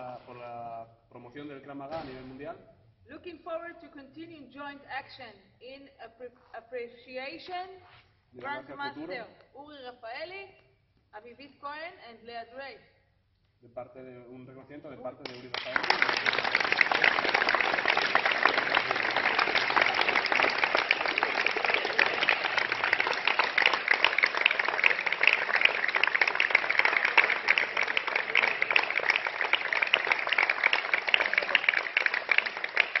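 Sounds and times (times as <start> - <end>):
people clapping: 15.2 - 33.0.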